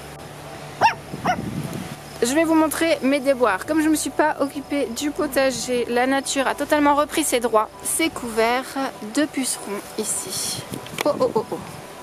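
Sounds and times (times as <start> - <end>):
small dog yipping: 0.8 - 1.4.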